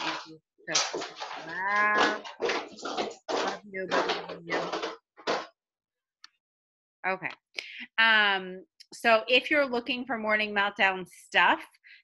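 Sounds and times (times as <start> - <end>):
scratchy background noise: 0.0 - 5.5.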